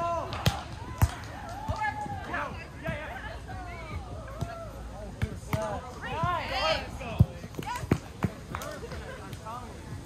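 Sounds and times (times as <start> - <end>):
volleyball slaps: 0.2 - 2.2, 5.2 - 6.4.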